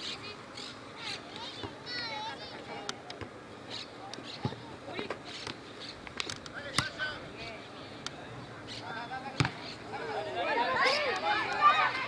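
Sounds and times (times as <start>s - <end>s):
distant players shouting: 8.8s - 12.0s
football kicked and bouncing: 9.3s - 9.6s.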